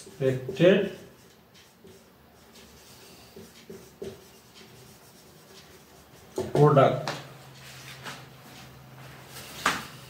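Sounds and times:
marker scratching on whiteboard: 0:00.0 - 0:10.0.

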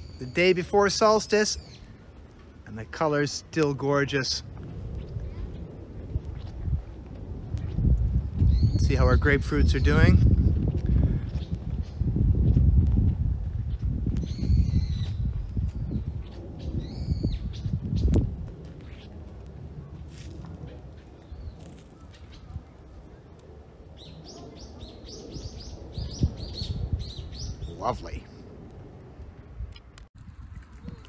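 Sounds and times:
small birds chirping: 0:00.0 - 0:02.0, 0:13.7 - 0:18.2, 0:20.6 - 0:28.2
low rumbling noise: 0:01.6 - 0:31.0.

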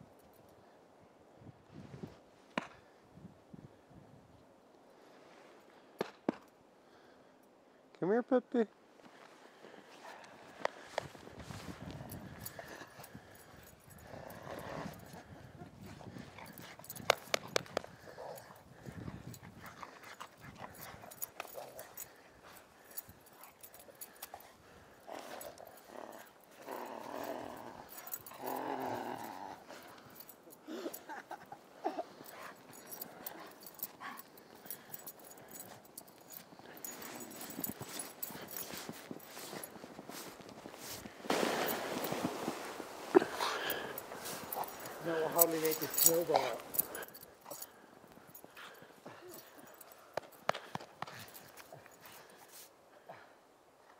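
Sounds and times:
dog play noises: 0:09.9 - 0:52.7.

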